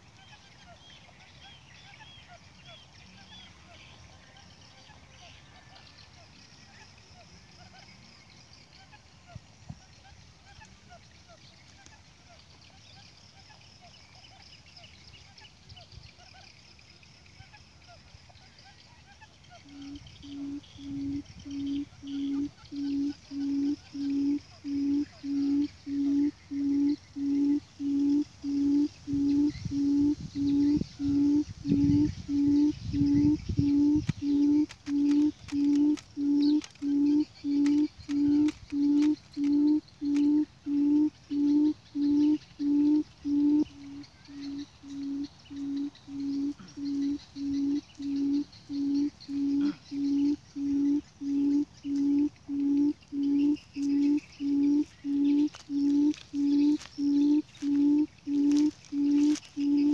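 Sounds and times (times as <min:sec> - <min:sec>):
bird hooting call: 0:19.0 - 0:59.9
faint clicks: 0:34.0 - 0:40.3.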